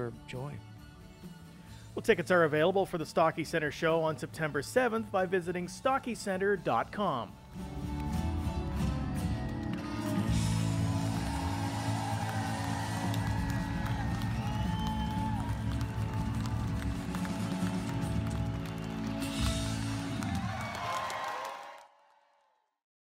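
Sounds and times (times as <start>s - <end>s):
strummed acoustic guitars: 6.7s - 20.2s
electric guitar: 7.5s - 21.0s.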